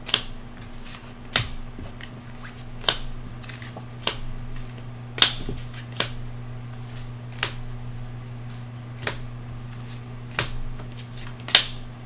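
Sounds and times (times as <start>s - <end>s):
tarot cards snapping: 0.0s - 1.6s, 2.8s - 6.2s, 6.9s - 7.6s, 9.0s - 11.8s
steady low hum: 0.0s - 12.0s.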